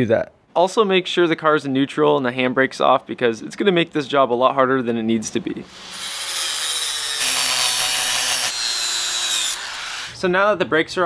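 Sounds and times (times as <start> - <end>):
angle grinder cutting steel: 5.7 - 10.2.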